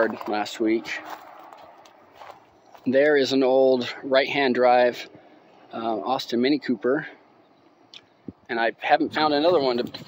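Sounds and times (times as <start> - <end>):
footsteps on dry grass: 0.0 - 2.9.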